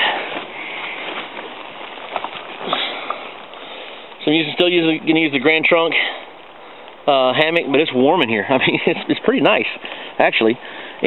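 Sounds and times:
fabric rustling: 0:00.0 - 0:05.0.

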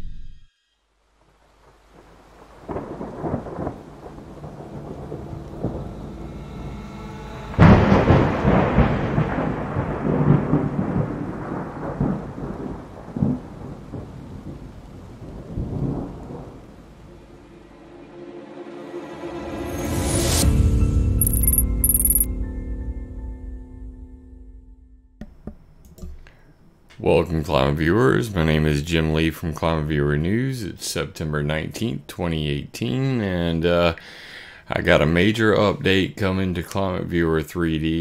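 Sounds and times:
rain: 0:01.0 - 0:18.2, 0:33.9 - 0:34.7
thunder rumbling: 0:01.6 - 0:06.5, 0:07.5 - 0:17.5
sharp thunderclap: 0:02.6 - 0:05.8, 0:07.6 - 0:16.8.

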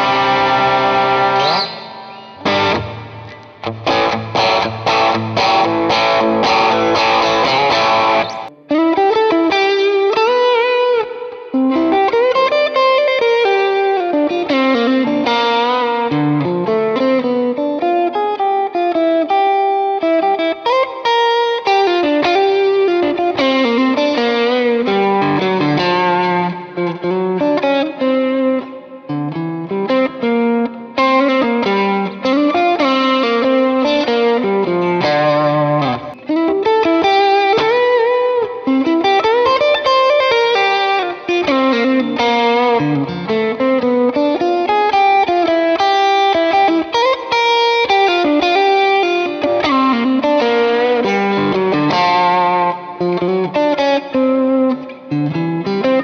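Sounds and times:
electric guitar through amplifier: 0:00.0 - 0:56.0.

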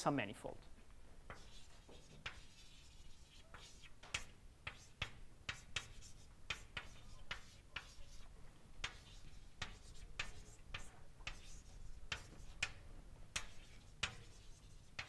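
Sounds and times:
chalk tapping and scratching: 0:01.3 - 0:15.0.

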